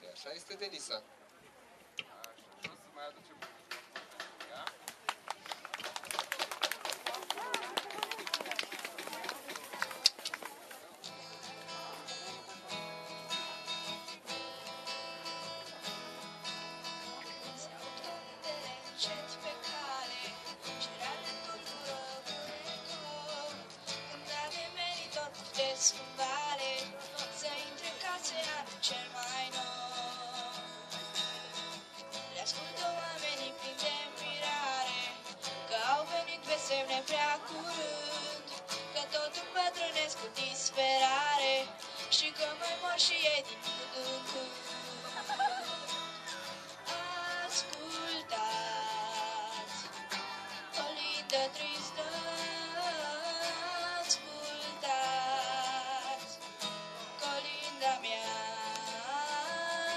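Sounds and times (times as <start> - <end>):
acoustic guitar accompaniment: 9.1 - 59.9
girl singing: 18.1 - 30.6, 32.3 - 45.1, 46.9 - 49.7, 50.8 - 56.4, 57.2 - 59.9.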